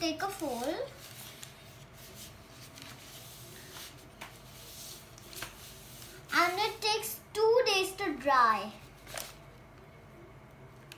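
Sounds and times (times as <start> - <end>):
paper rustling and folding: 0.0 - 6.8, 8.8 - 9.7.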